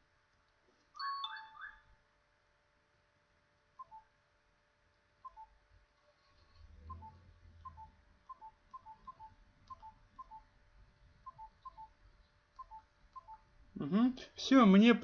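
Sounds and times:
low hum: 1.8s - 14.4s.

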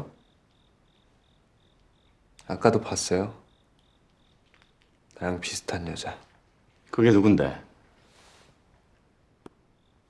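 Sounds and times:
faint insect chirping: 0.0s - 10.0s.

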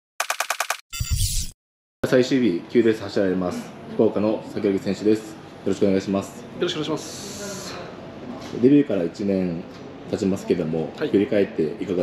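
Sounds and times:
rapid sharp clicks: 0.2s - 0.8s.

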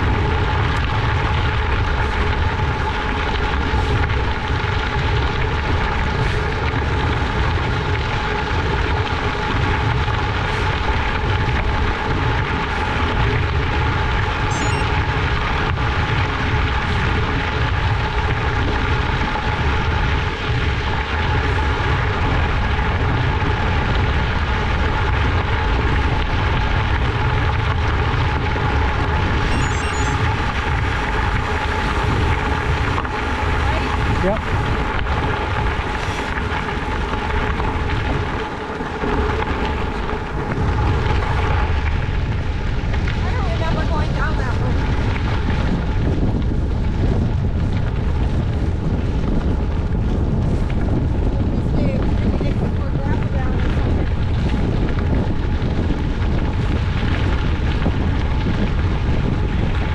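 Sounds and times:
steady hum: 0.0s - 59.9s
wind rushing over microphone: 0.0s - 59.9s.

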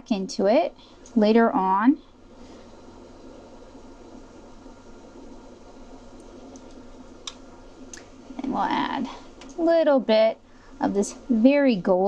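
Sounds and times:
fan-like hiss and hum: 0.0s - 12.0s
faint clicks: 1.0s - 1.2s, 6.2s - 8.1s.

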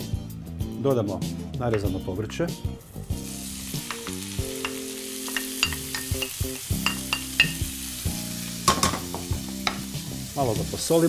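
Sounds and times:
vegetables sizzling in oil: 3.0s - 11.0s.

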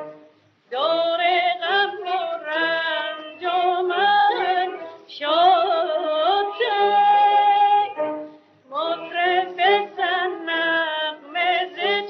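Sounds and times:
woman singing with vibrato: 0.7s - 12.0s.

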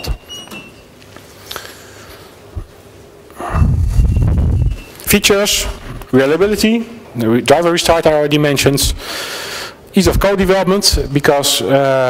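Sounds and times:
breath blown onto microphone: 3.4s - 4.7s.

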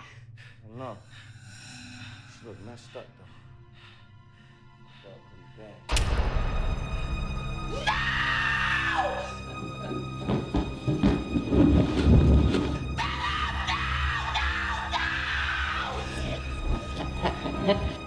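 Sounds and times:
low horror film score: 0.0s - 18.0s
woman screaming: 7.7s - 9.4s, 13.0s - 16.4s.

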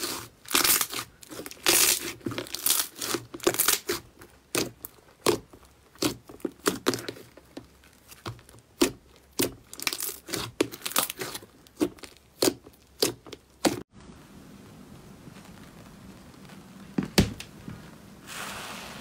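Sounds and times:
slime crackling and popping: 0.0s - 13.9s
faint steady hiss: 13.9s - 19.0s.

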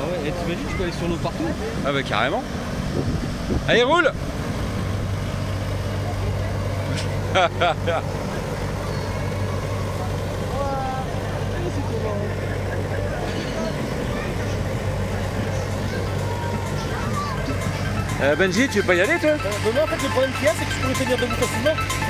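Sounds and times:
low motor drone: 0.0s - 22.0s.

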